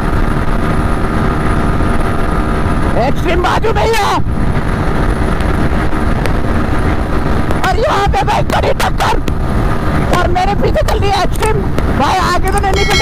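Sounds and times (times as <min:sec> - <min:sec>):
wind rushing on microphone: 0:00.0 - 0:13.0.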